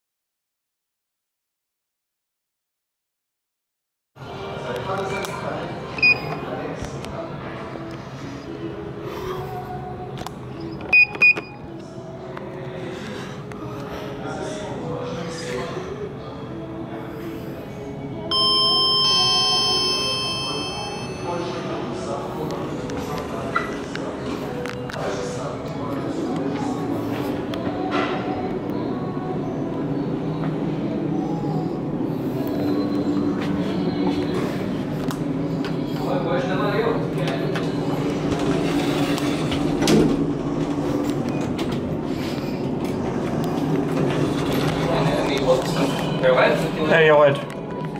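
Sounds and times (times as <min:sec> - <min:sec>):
elevator running hum and rumble: 0:04.2 - 0:47.9
elevator button beep: 0:06.0 - 0:06.3, 0:10.6 - 0:11.6, 0:18.3 - 0:21.4
two-note electronic chime: 0:18.3 - 0:21.6.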